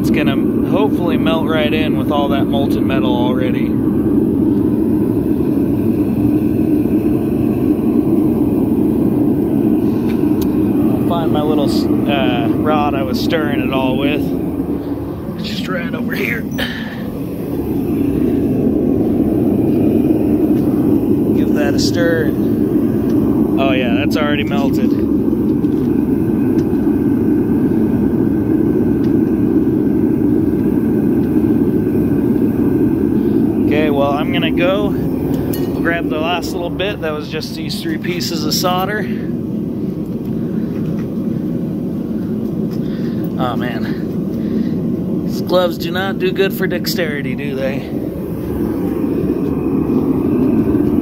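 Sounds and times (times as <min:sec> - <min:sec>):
gas burners roaring: 0:00.0 - 0:51.0.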